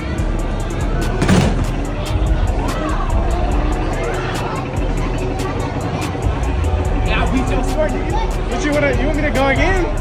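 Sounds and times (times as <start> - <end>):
background music with steady beat: 0.0 - 10.0
punch bag thump: 1.2 - 1.8.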